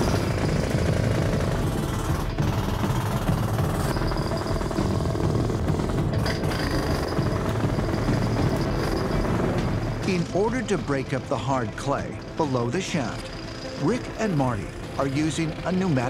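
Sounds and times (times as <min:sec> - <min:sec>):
jackhammer breaking clay: 0:06.1 - 0:09.3.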